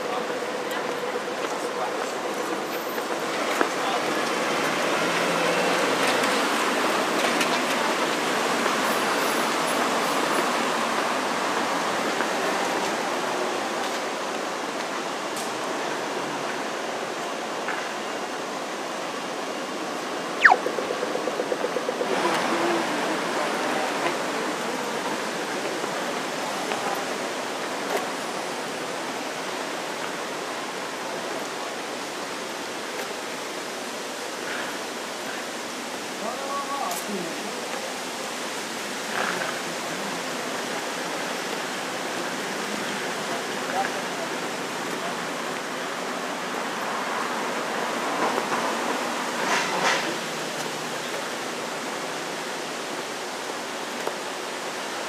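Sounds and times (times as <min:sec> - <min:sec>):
distant traffic hiss: 0:00.0 - 0:55.0
sharp sound: 0:20.4 - 0:20.8.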